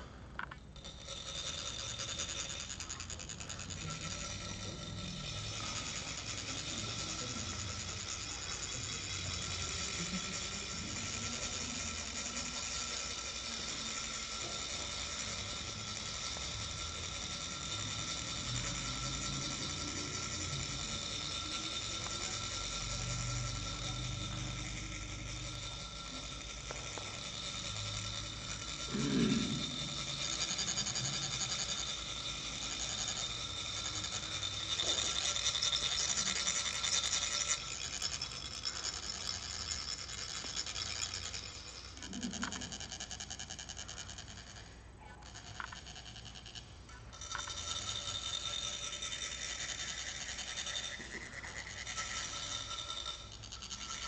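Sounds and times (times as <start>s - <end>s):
metal rod rasping metal funnel: 0.8s - 54.0s.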